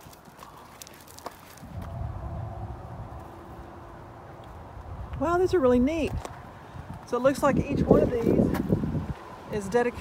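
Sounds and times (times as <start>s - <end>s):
footsteps crunching on gravel: 0.0s - 2.1s
wind rumbling on microphone: 1.1s - 10.0s.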